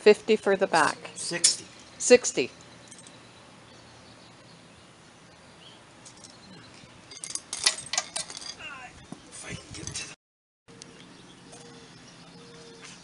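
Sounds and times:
metallic clinks of air chuck: 2.6s - 3.2s, 7.1s - 8.6s.

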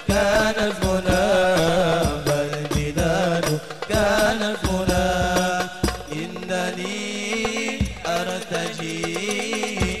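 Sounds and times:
men singing a devotional chant: 0.0s - 10.0s.

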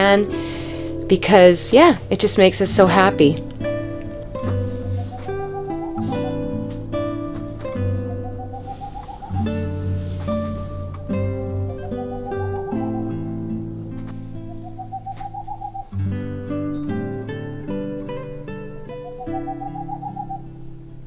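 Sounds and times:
acoustic guitar music: 0.0s - 21.0s
owl hooting: 3.9s - 16.0s, 18.9s - 20.6s.

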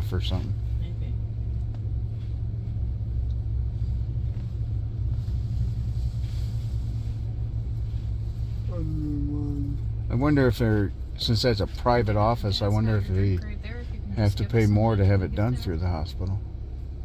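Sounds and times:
van engine idling: 0.0s - 17.0s.

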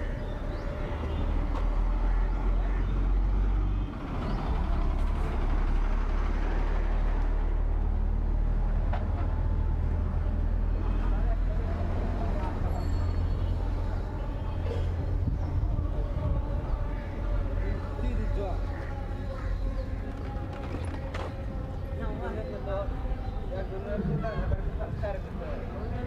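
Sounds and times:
indistinct voices: 0.0s - 26.0s
loud low street rumble: 0.0s - 26.0s.

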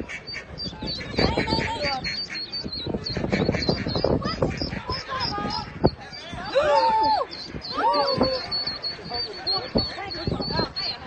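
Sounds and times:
ducklings peeping: 0.0s - 11.0s.

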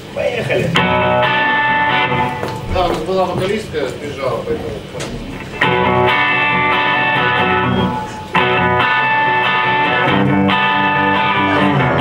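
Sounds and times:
electric guitar chord ringing: 0.6s - 12.0s.

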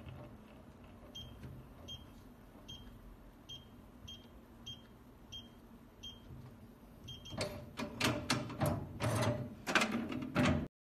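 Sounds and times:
keypad beeps: 1.1s - 6.3s, 7.0s - 7.6s.

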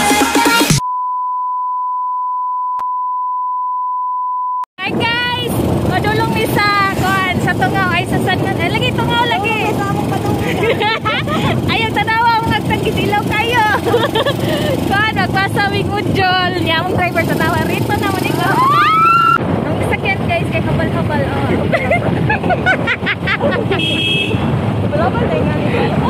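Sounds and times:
high-pitched beep tone: 0.8s - 4.6s
people's voices: 4.8s - 23.9s, 24.9s - 26.0s
wind rumble on microphone: 4.8s - 26.0s.

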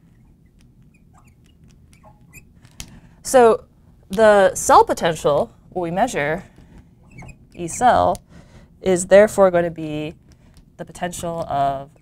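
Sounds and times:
marker squeaking on glass: 0.0s - 2.6s, 7.0s - 8.0s.

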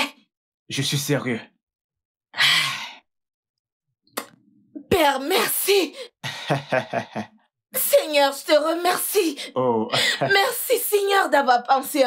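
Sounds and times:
person sighing: 9.6s - 10.2s.

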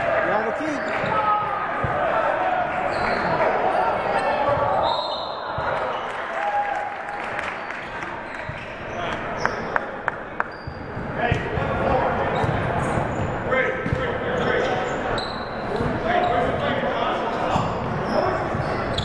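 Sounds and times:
shouting and chatter in gym: 0.0s - 19.0s.

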